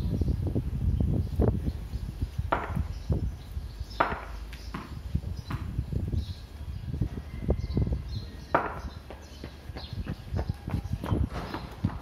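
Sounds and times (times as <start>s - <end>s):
sharp knocks: 2.5s - 2.9s, 4.0s - 5.7s.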